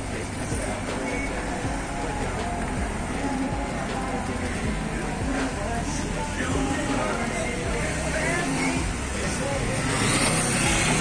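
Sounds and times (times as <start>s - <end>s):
street traffic: 0.0s - 11.0s
voices of passers-by: 0.0s - 11.0s
motorcycle passing close: 6.7s - 11.0s.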